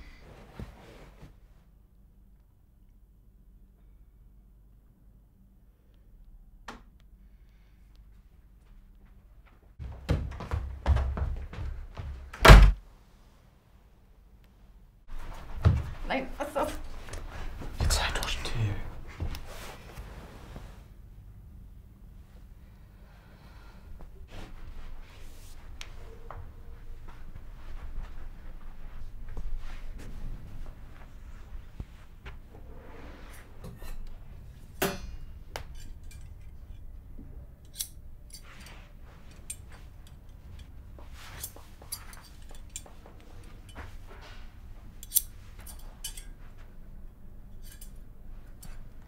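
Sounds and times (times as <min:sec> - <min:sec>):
door slamming shut: 0:12.4 - 0:12.8.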